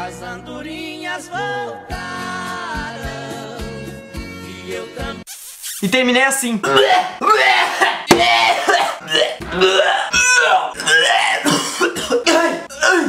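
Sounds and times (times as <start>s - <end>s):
man gagging and coughing: 6.6s - 13.0s.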